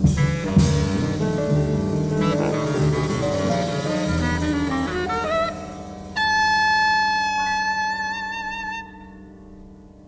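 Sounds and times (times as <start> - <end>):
jazz quartet playing: 0.0 - 8.8
high held woodwind note: 2.2 - 9.4.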